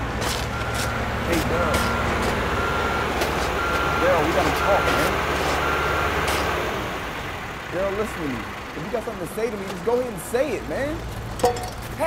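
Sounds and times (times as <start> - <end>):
engine rumble: 0.0 - 12.0
reversing alarm beeping: 0.5 - 6.5.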